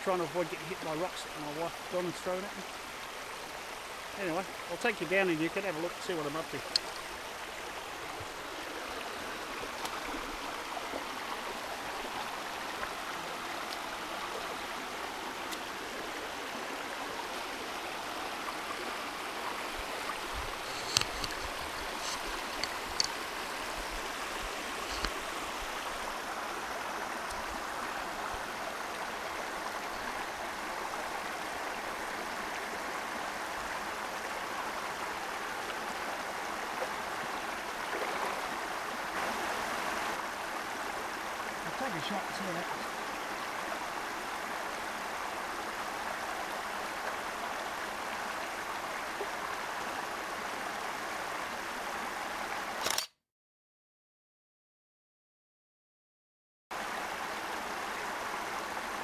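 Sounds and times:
creek water over rocks: 0:00.0 - 0:52.9, 0:56.7 - 0:59.0
sharp clicks: 0:52.8 - 0:53.2.

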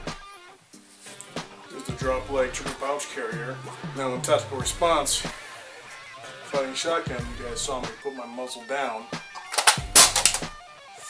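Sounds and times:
metal clacks of magazine removal: 0:09.4 - 0:10.4.

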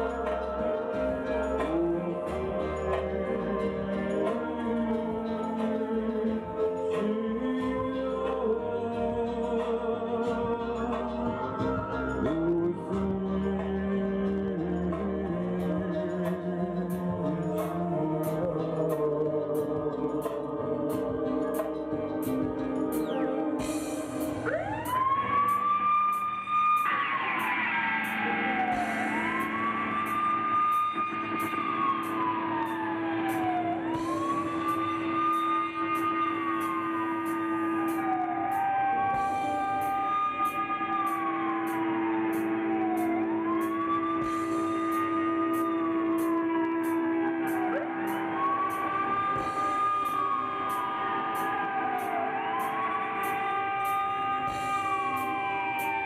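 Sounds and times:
live rock band playing: 0:00.0 - 0:56.0
siren-like wail: 0:00.0 - 0:56.0.

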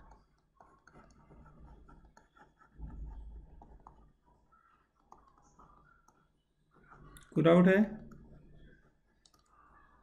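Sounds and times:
computer mouse clicks: 0:00.0 - 0:04.0, 0:05.0 - 0:06.3, 0:08.1 - 0:09.7.

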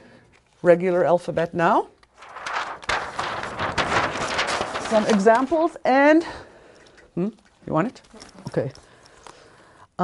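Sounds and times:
chart paper rustling and crinkling: 0:00.2 - 0:06.1, 0:07.4 - 0:09.7.

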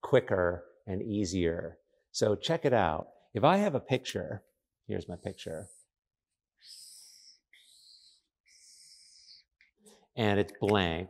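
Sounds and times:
marker pen squeaking on paper: 0:06.6 - 0:09.7.

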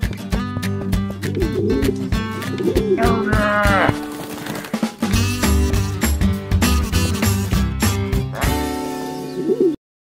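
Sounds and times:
guitar cartoon music with beat: 0:00.0 - 0:09.8.

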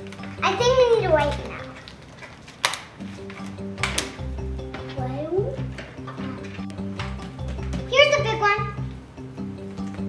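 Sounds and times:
background music: 0:00.0 - 0:02.0, 0:02.6 - 0:10.0
rubber bands snapping: 0:01.2 - 0:04.4.

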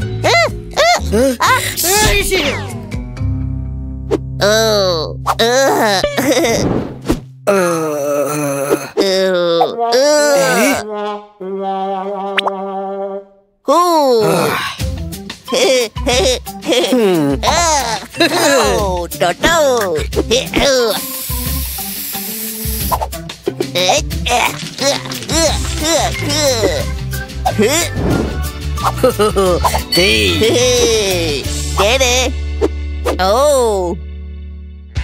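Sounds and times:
cartoon character groaning: 0:04.4 - 0:06.6, 0:07.5 - 0:10.9, 0:13.7 - 0:14.8
aerosol can spraying hiss: 0:20.9 - 0:23.1.

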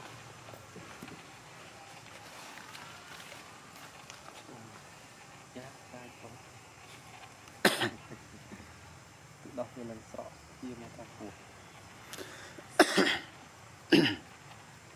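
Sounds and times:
loud cough-like burst: 0:07.6 - 0:08.1, 0:12.7 - 0:13.3, 0:13.9 - 0:14.2.

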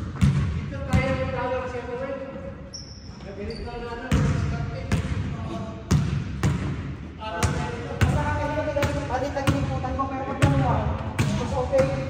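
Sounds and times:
basketball bouncing on hardwood floor: 0:00.0 - 0:01.2, 0:05.9 - 0:06.8.

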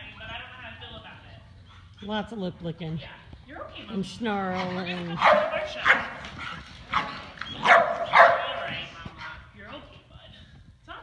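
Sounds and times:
dog barking: 0:05.1 - 0:06.2, 0:06.9 - 0:08.8.

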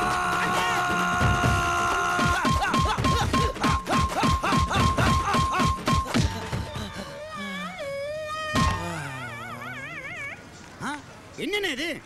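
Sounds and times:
man whimpering wail: 0:00.0 - 0:10.4.

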